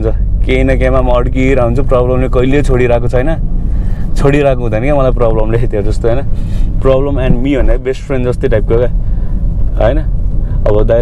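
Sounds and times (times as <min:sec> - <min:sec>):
car engine drone and road noise: 0:00.0 - 0:11.0.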